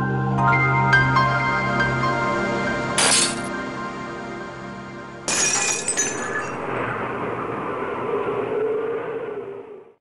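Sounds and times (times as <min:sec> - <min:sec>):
glass shattering: 0:03.0 - 0:03.6, 0:05.3 - 0:06.6.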